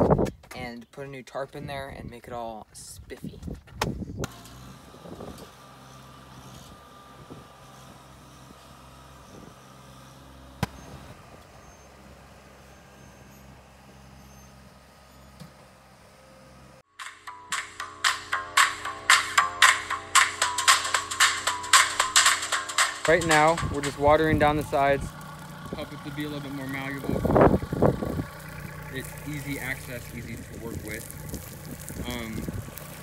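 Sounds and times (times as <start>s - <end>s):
loader digging dirt: 4.2s - 16.8s, 21.1s - 33.0s
tractor engine running: 4.2s - 16.8s, 18.0s - 33.0s
loud music with strong beat: 17.0s - 24.0s.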